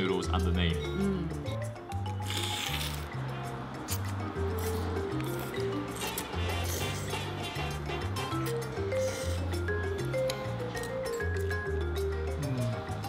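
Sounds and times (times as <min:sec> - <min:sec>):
background music with bass line: 0:00.0 - 0:13.0
man slurping noodles: 0:02.2 - 0:03.1.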